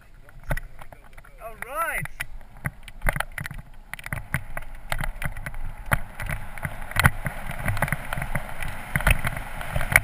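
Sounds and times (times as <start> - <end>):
bike rattling over rough ground: 0.0 - 10.0
wind on microphone: 0.0 - 10.0.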